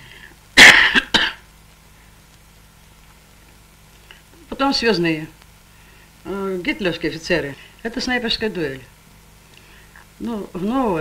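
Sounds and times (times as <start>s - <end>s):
woman coughing: 0.6s - 1.5s.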